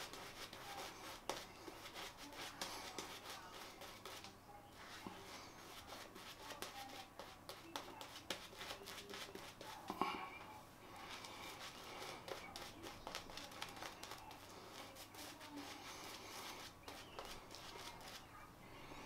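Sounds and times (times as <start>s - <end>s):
shaving brush swishing: 11.0s - 18.3s.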